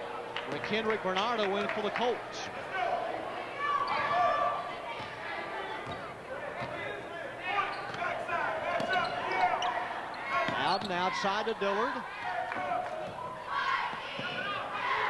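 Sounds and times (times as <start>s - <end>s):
voices calling out: 2.6s - 15.0s.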